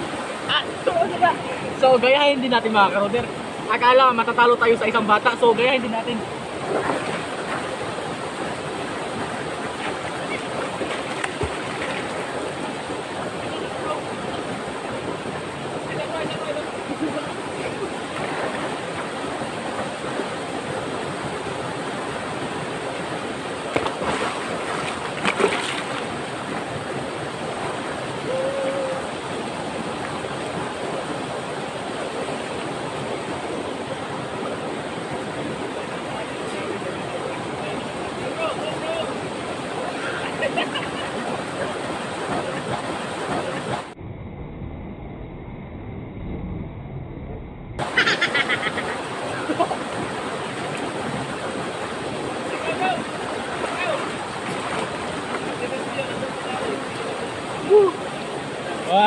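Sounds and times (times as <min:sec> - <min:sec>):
river water rushing over rocks: 0:00.0 - 0:44.0, 0:47.8 - 0:59.0.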